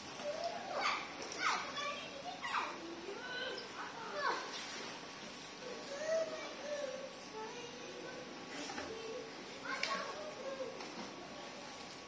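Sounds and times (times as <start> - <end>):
children shouting at play: 0.2 - 4.5, 5.6 - 10.9.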